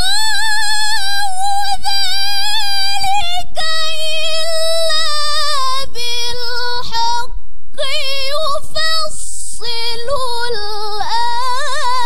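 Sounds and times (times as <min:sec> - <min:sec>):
woman reciting melodically: 0:00.0 - 0:12.0.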